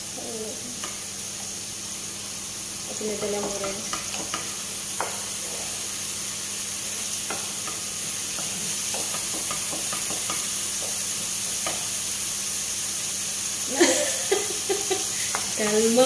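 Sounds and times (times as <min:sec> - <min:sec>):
vegetables sizzling in oil: 0:00.0 - 0:16.0
spatula scraping and tapping pan: 0:03.1 - 0:05.8, 0:07.1 - 0:12.0, 0:15.2 - 0:15.9.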